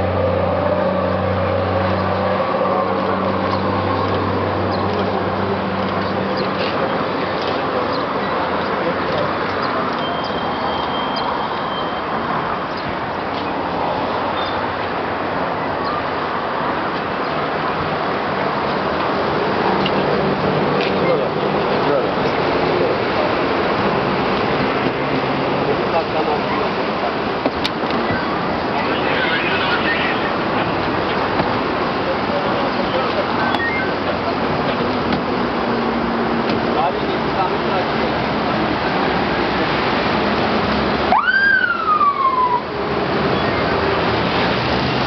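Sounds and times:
street and crowd background: 0.0 - 45.0
siren whoop: 41.1 - 43.7.

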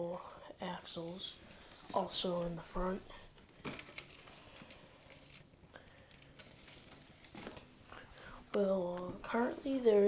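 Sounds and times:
soft handling rustles: 0.9 - 10.0.

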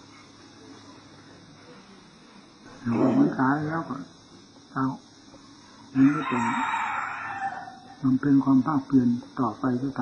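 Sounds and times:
rooster crowing: 2.8 - 3.4, 6.0 - 8.1.

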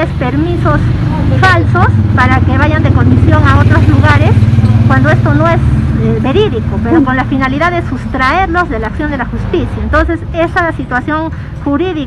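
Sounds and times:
vehicle engine idling: 0.0 - 9.3
woman speaking: 0.0 - 12.0.

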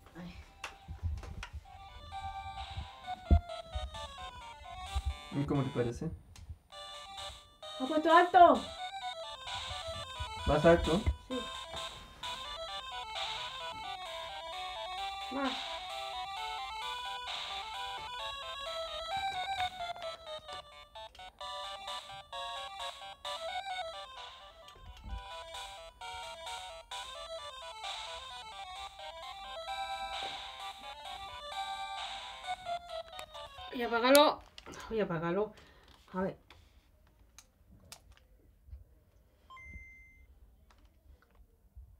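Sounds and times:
chiptune game music: 0.4 - 34.2.

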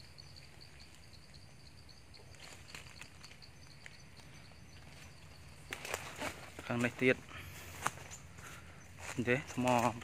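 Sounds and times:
insect chirping: 0.0 - 10.0.

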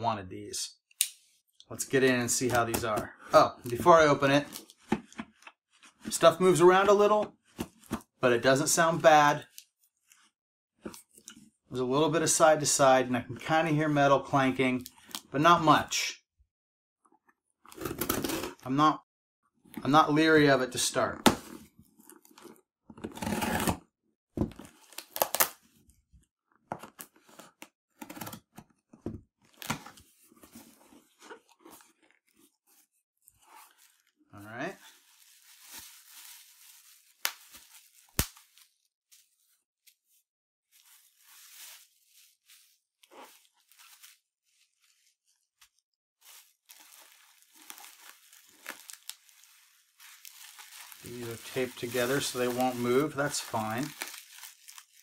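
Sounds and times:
packing tape being cut and torn: 24.8 - 25.7, 37.2 - 38.7
bubble wrap rustling and crinkling: 29.5 - 55.0.

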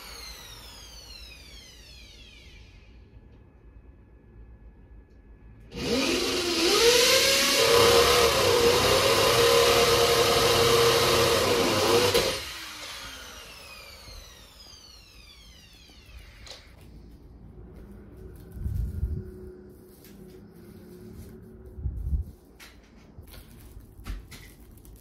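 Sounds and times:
electric motor running: 0.0 - 2.9, 5.7 - 16.6.

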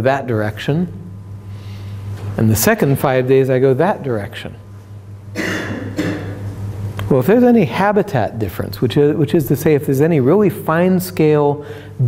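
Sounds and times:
person coughing: 5.3 - 6.5.

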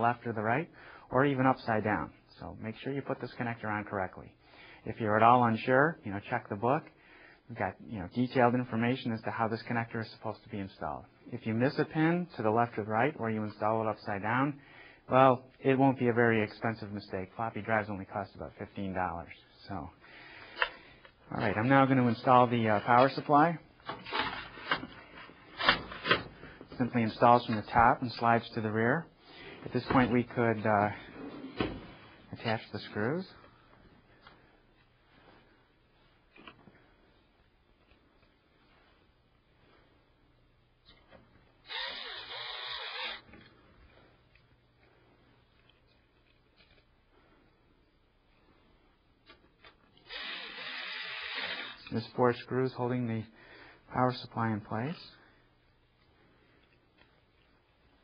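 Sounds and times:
electric screwdriver running: 41.7 - 43.2, 50.1 - 51.8.

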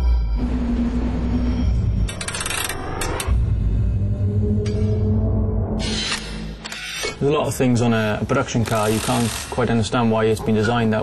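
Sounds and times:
low rumble: 0.0 - 6.6.

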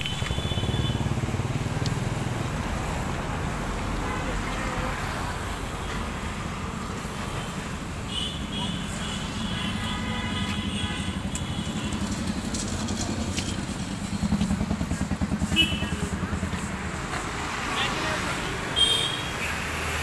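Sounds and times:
engine rumbling: 0.0 - 18.6.

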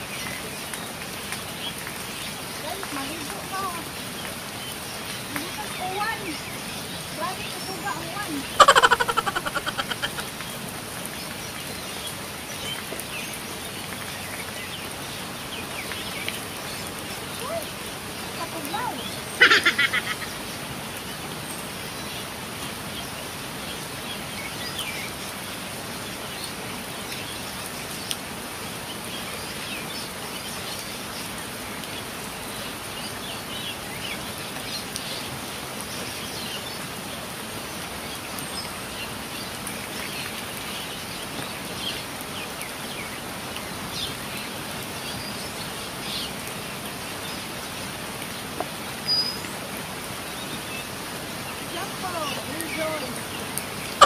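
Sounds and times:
rain on foliage: 0.0 - 54.0
birds calling: 1.5 - 13.8, 14.4 - 25.5, 38.2 - 54.0.

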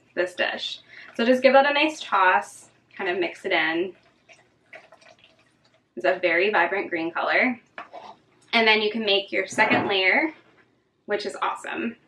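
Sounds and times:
spatula scraping plastic bowl: 7.8 - 8.2.

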